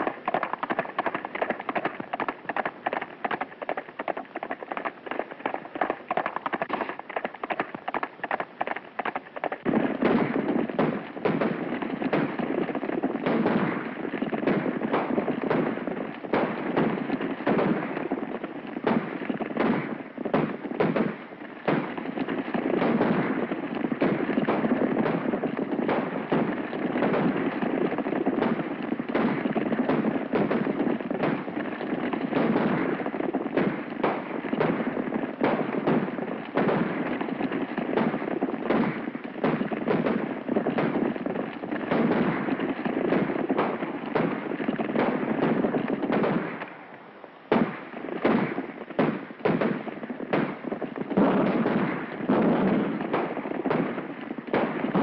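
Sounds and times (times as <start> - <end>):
gunfire cracks: 0.0 - 55.0
horses hooves galloping: 0.0 - 55.0.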